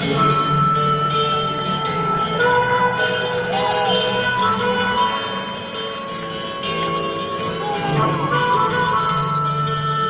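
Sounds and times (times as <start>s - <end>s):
live acoustic rock band music: 0.0s - 10.0s.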